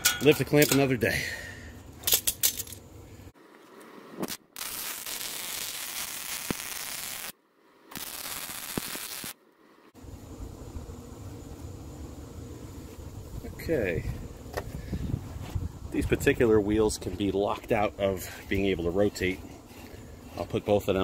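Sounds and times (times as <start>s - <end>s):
welder arc crackling and hissing: 4.2s - 21.0s.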